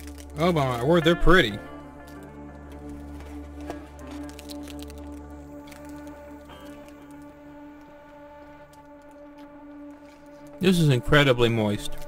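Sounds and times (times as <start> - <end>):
plastic wrapper crinkling: 0.0 - 12.0
soft music with held chords: 0.0 - 12.0.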